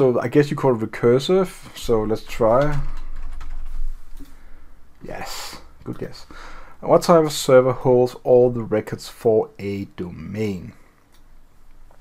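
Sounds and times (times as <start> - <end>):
keyboard typing: 2.1 - 4.3.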